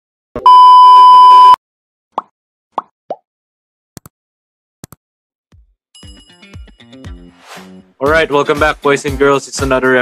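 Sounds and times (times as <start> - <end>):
loud steady beep: 0.4 - 1.6.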